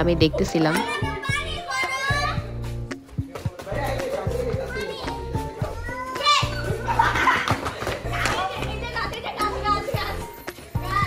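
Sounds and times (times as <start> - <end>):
music with bass beat: 0.0 - 11.0
children shouting and squealing: 0.7 - 2.6, 4.1 - 11.0.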